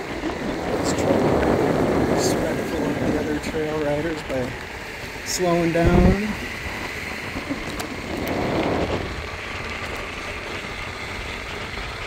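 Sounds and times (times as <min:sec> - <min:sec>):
wheels rumbling on asphalt: 0:00.0 - 0:12.0
wind on microphone: 0:00.0 - 0:12.0.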